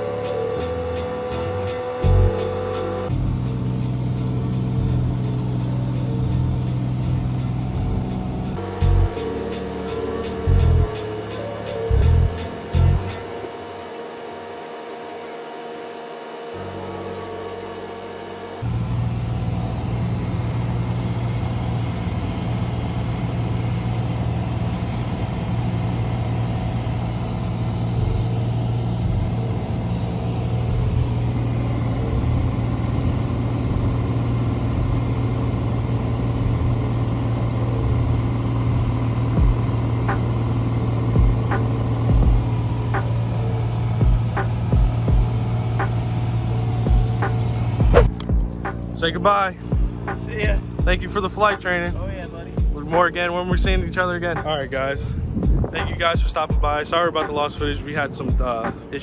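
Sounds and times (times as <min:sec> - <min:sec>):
airplane engine droning: 0:00.0 - 0:59.0
short low thumps: 0:47.8 - 0:48.7, 0:49.7 - 0:51.1, 0:53.5 - 0:53.9, 0:55.2 - 0:56.8.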